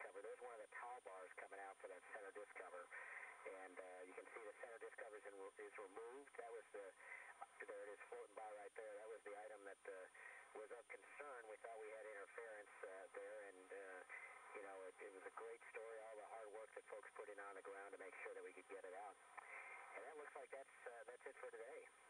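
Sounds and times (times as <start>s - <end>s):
faint speech over radio: 0.0s - 22.0s.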